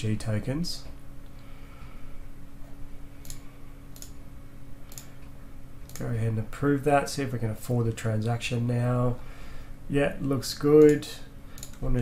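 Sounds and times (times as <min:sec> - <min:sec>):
steady low hum: 0:00.0 - 0:12.0
computer mouse clicks: 0:03.2 - 0:04.2, 0:04.9 - 0:06.1, 0:11.6 - 0:11.8.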